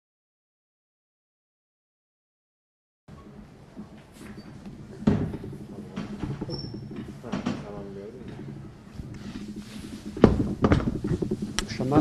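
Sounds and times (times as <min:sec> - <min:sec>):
chairs scraping and knocking: 0:03.1 - 0:12.0.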